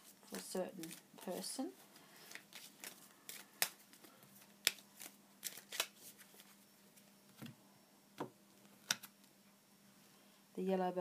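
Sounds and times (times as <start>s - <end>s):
cards being shuffled: 0.3s - 1.6s, 2.2s - 6.6s.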